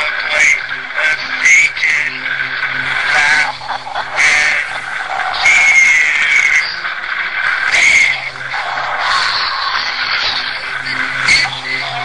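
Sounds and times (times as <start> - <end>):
low musical drone: 0.0 - 12.0.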